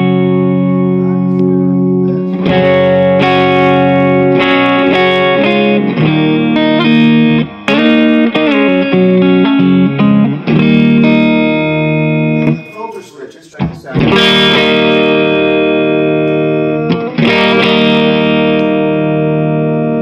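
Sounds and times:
electric guitar playing: 0:00.0 - 0:20.0.

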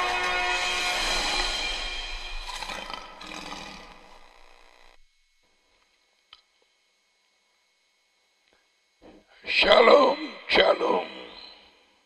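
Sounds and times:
lion roaring: 0:02.4 - 0:04.8.

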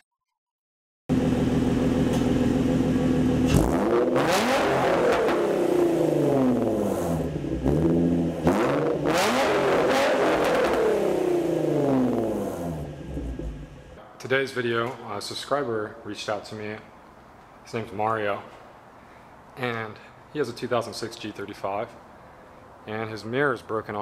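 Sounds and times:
car engine idling and revving: 0:01.1 - 0:14.0.

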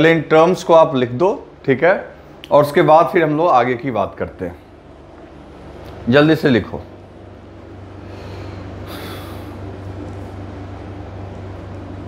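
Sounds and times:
low electrical hum: 0:00.0 - 0:12.0
person sniffing close to microphone: 0:08.1 - 0:09.6.

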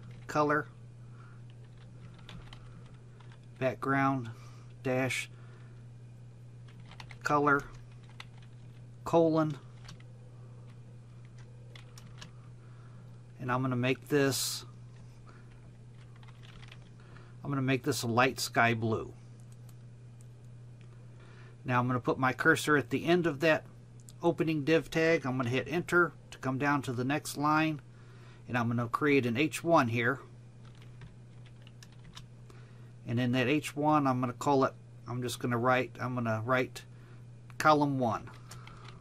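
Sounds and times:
soft typing on keyboard: 0:00.0 - 0:00.4, 0:01.4 - 0:03.7, 0:06.6 - 0:08.8, 0:09.4 - 0:12.4, 0:14.9 - 0:17.3, 0:30.6 - 0:32.6, 0:38.2 - 0:39.0
steady low hum: 0:00.0 - 0:39.0.

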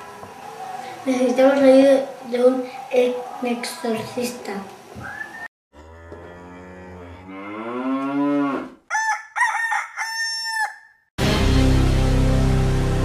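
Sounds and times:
rooster crowing: 0:08.2 - 0:11.1.

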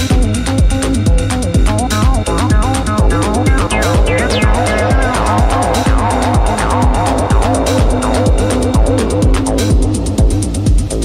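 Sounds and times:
techno music: 0:01.0 - 0:11.0.

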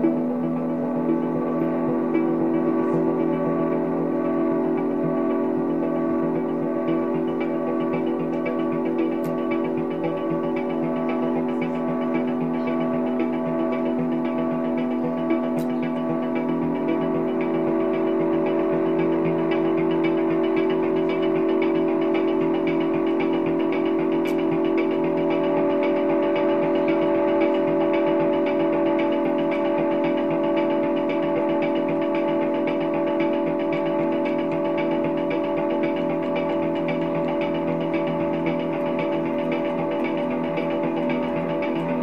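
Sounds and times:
electric guitar ambient drone: 0:00.0 - 0:42.0.

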